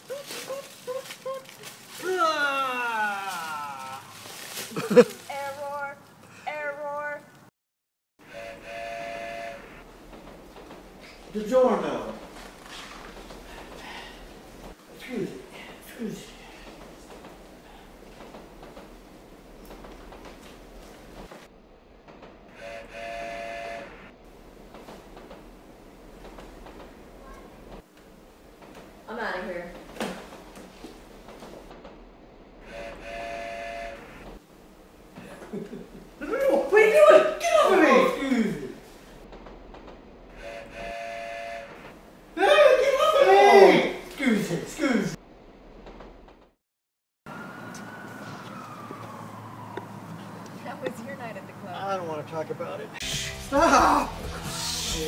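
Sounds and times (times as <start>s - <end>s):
train whistle blast: 8.2s - 9.8s, 22.5s - 24.1s, 32.6s - 34.3s, 40.4s - 42.0s, 53.0s - 53.6s
low room noise: 8.3s - 46.6s.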